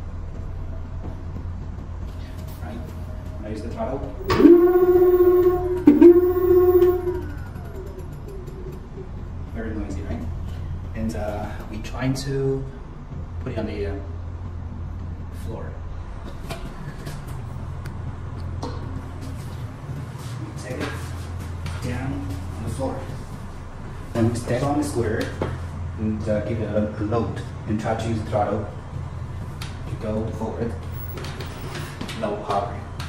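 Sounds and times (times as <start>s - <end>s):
steady low hum: 4.2s - 11.0s.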